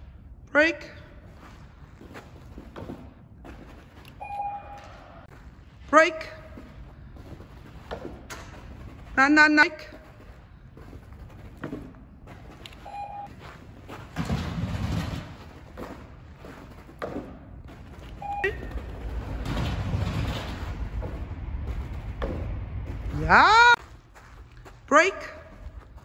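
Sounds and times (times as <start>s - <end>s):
dog running on artificial turf: 1.3s - 5.6s, 6.2s - 26.0s
beep-like tones: 4.2s - 5.2s, 12.8s - 13.3s, 18.2s - 18.9s.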